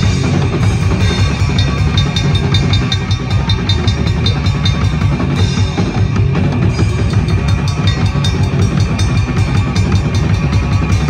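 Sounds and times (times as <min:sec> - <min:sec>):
fast bass drum pulse: 0:00.0 - 0:11.0
live band playing loudly: 0:00.0 - 0:11.0
sharp cymbal ticks: 0:01.0 - 0:05.6, 0:06.9 - 0:11.0.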